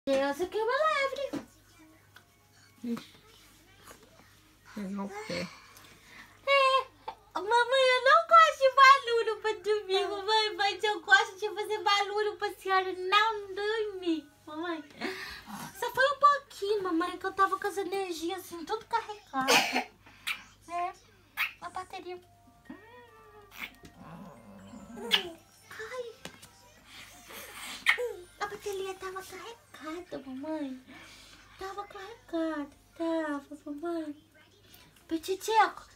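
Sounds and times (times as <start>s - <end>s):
people talking: 6.4s - 19.8s, 24.8s - 30.9s, 31.6s - 35.9s.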